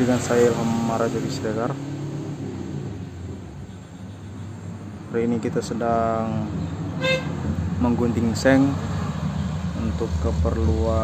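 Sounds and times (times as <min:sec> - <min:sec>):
vehicle engine hum: 0:00.0 - 0:11.0.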